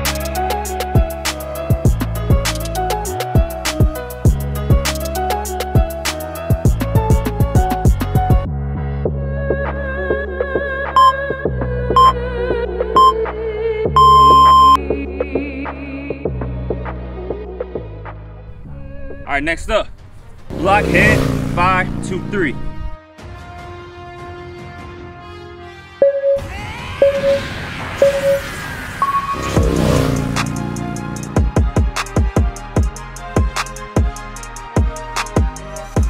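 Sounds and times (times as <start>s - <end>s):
background music: 0.0s - 36.0s
interval timer beeps: 11.0s - 11.2s, 12.0s - 12.2s, 13.0s - 13.2s, 14.0s - 14.8s, 27.0s - 27.4s, 28.0s - 28.4s
background music with rising sweep: 26.5s - 36.0s.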